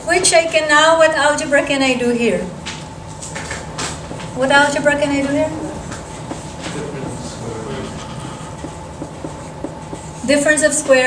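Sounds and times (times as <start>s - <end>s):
low room rumble: 0.0s - 11.0s
marker writing on whiteboard: 5.1s - 11.0s.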